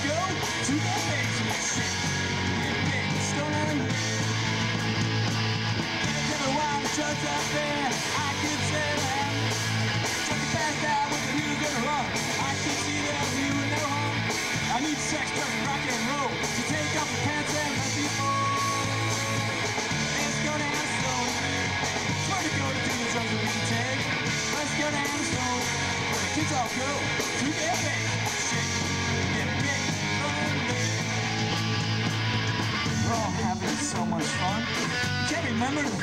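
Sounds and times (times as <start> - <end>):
live rock band playing: 0.0 - 36.0.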